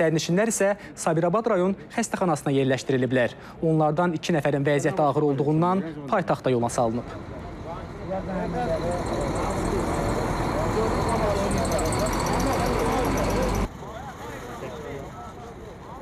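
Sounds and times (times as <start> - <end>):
people talking indistinctly: 0.0 - 16.0
road traffic rumble: 5.8 - 16.0.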